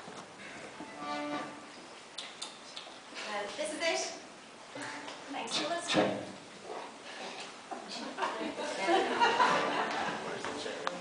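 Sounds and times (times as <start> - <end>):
held instrument note: 0.9 - 1.7.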